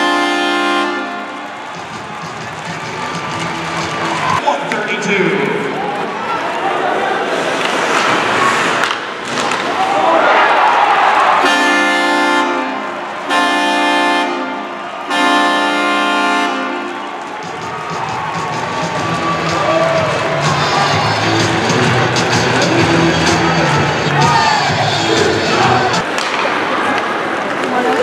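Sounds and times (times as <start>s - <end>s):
goal horn blasts: 0.0s - 1.4s, 11.4s - 17.0s
arena music: 0.0s - 5.6s, 11.4s - 26.0s
crowd cheering: 0.0s - 28.0s.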